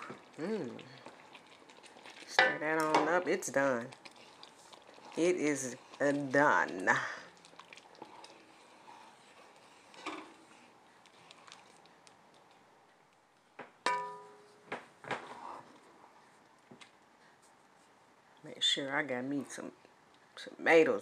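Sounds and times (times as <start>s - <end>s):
spoon stirring thick chili: 0.0s - 18.0s
spoon knocking on pot rim: 13.9s - 14.5s.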